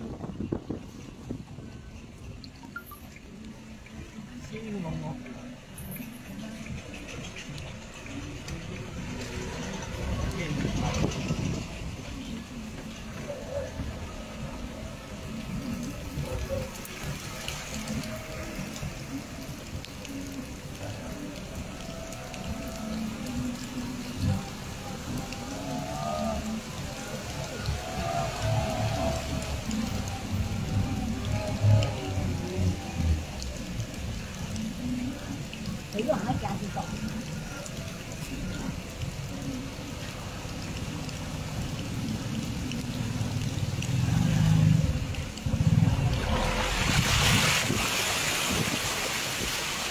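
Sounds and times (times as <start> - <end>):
car driving through water: 0.0 - 49.9
music with singing: 0.0 - 49.9
rain: 0.0 - 49.9.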